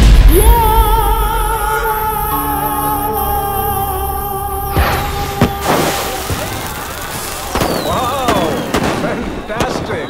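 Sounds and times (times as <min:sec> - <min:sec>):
fireworks crackling: 0:04.2 - 0:10.0
firework bang: 0:04.8 - 0:10.0.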